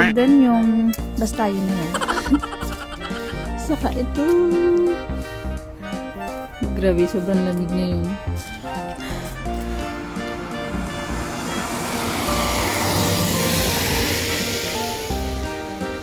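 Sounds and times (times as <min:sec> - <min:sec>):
van passing on wet road: 0:08.6 - 0:16.0.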